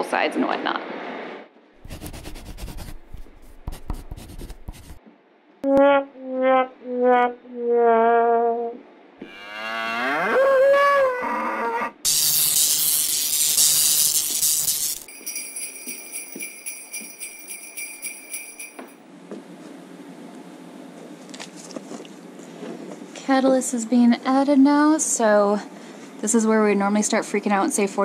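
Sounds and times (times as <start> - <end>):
cow mooing: 6.9 - 11.9
sleigh bells jingling: 12.1 - 19.0
ringing chime tones: 15.0 - 19.0.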